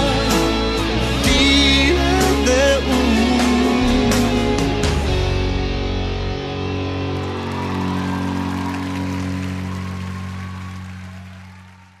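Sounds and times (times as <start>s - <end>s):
band chord with guitar ringing: 0.0s - 11.0s.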